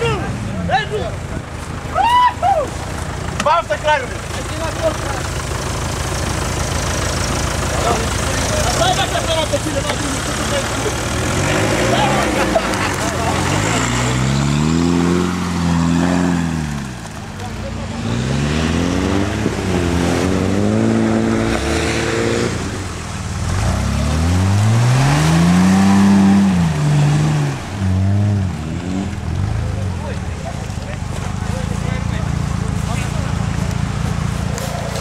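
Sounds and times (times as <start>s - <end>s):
off-road truck engine revving: 0.0s - 35.0s.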